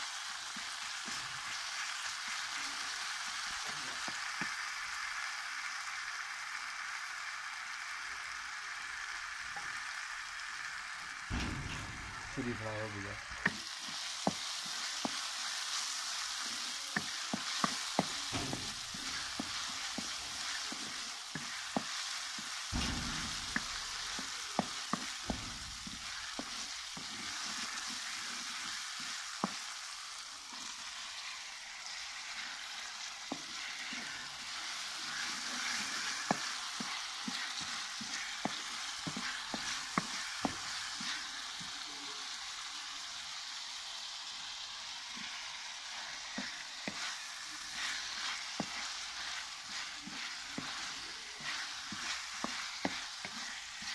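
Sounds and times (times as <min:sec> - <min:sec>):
onions sizzling in oil: 0:00.0 - 0:53.9
wooden spoon scraping a pan: 0:16.4 - 0:29.7, 0:30.5 - 0:41.8, 0:45.1 - 0:53.9.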